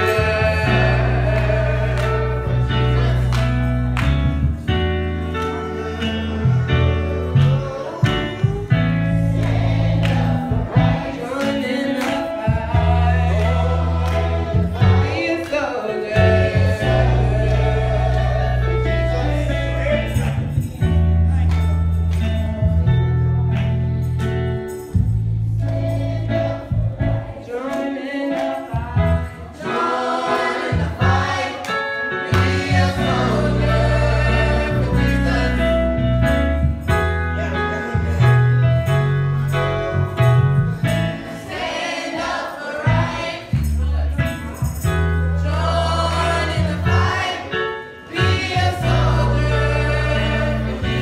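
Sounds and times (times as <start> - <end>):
gospel choir singing: 0.0 - 24.0, 24.8 - 40.0, 40.6 - 51.0
keyboard bass chords: 0.0 - 27.7, 28.4 - 51.0.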